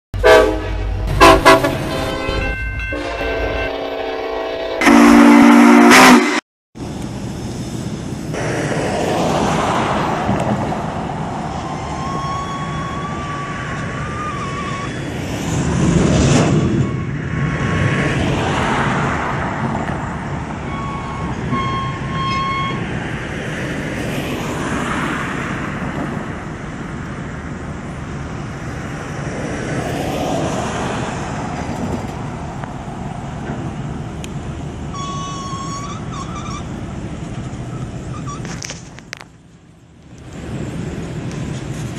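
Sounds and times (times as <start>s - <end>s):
train horn blast: 0.2s - 6.4s, 34.9s - 36.7s
passing road traffic: 0.2s - 41.9s
slow freight train: 0.2s - 41.9s
car passing: 8.2s - 34.1s
thin squealing tone: 11.7s - 15.1s, 34.9s - 36.9s, 37.6s - 38.7s.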